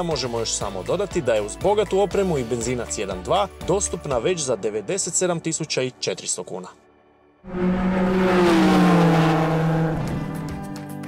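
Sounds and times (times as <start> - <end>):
engine-like note: 7.4 - 11.0.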